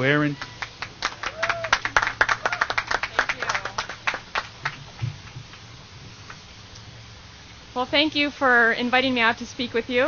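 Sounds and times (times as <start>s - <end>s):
steady low hum: 0.0s - 10.0s
thump on microphone: 5.0s - 5.5s.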